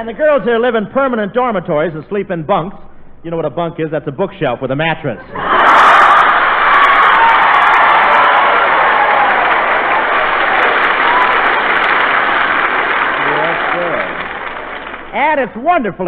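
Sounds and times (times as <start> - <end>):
audience laughing and applauding: 5.4 - 15.1.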